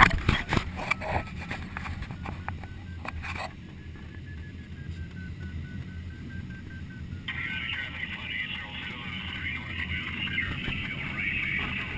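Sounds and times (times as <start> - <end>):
variometer beeping: 0.0 - 11.9.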